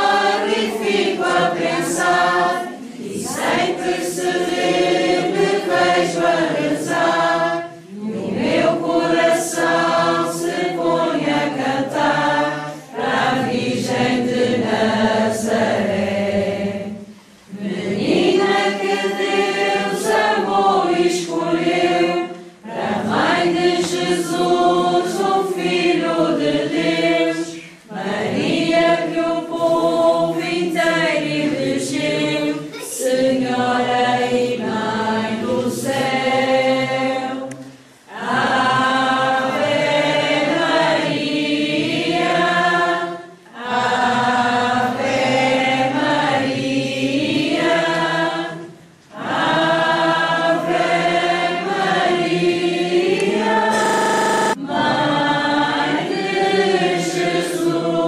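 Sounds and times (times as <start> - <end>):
group singing a hymn unaccompanied: 0.0 - 58.0.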